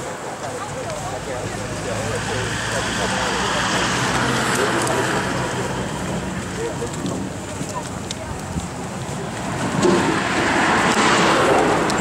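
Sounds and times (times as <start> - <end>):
vehicle passing by: 0.5 - 12.0.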